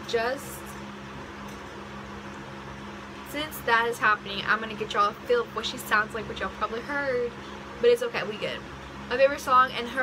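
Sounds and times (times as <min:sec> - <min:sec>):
woman speaking: 0:00.0 - 0:00.7, 0:03.3 - 0:10.0
steady low hum: 0:00.0 - 0:10.0.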